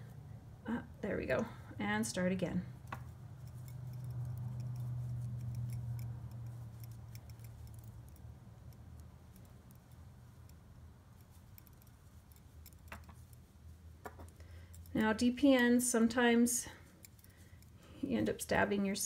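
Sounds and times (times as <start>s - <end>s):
low steady hum: 0.0s - 19.0s
metal knitting needles clicking: 2.8s - 15.2s, 16.9s - 18.4s.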